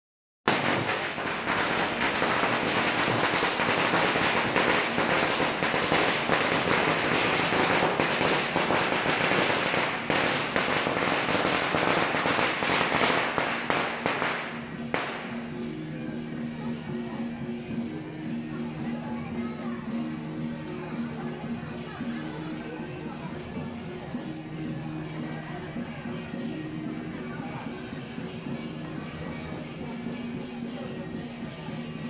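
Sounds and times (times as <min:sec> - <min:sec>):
firecrackers crackling: 0:00.5 - 0:15.7.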